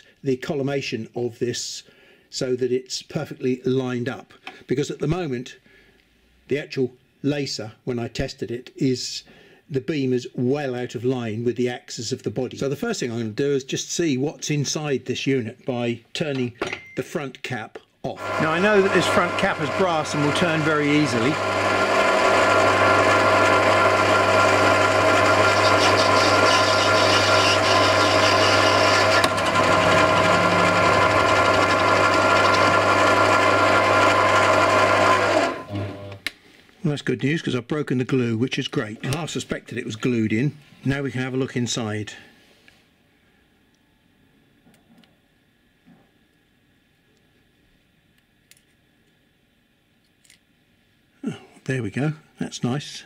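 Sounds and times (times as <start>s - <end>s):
tool bit cutting brass: 18.1s - 35.8s
lathe motor hum and whine: 18.1s - 36.2s.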